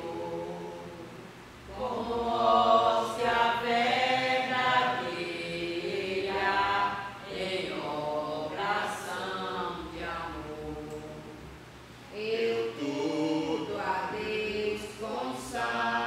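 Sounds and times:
woman singing a hymn: 0.0 - 1.1, 1.7 - 11.5, 12.1 - 16.0.

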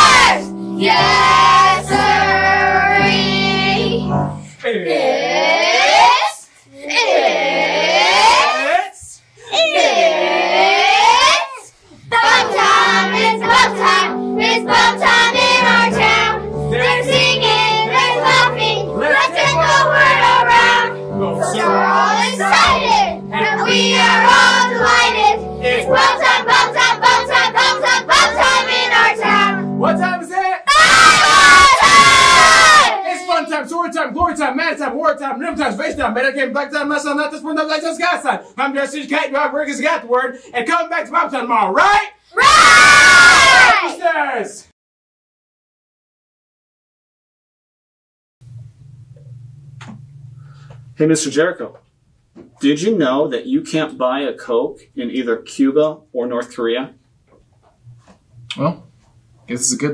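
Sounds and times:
group singing: 0.0 - 4.1, 12.1 - 29.8
backing music held chord: 0.0 - 4.5, 12.1 - 30.4
children cheering: 30.7 - 33.1, 42.4 - 43.9.

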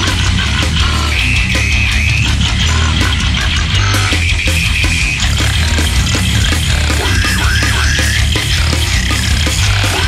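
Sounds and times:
extreme metal music: 0.0 - 10.0.

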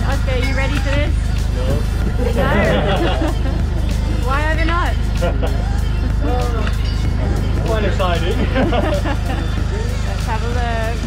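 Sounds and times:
people talking: 0.0 - 3.4, 7.6 - 11.0
background music with low pulse: 0.0 - 11.0
people laughing: 1.9 - 4.2, 5.0 - 6.5, 8.1 - 10.0.

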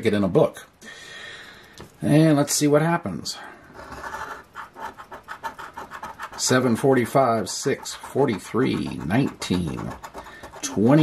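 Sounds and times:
coin scratching lottery ticket: 3.7 - 11.0.

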